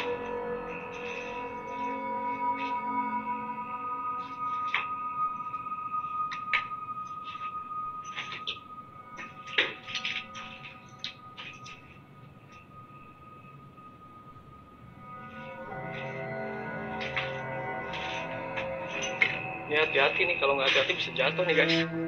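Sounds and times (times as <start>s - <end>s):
ambient drone music: 0.0s - 22.0s.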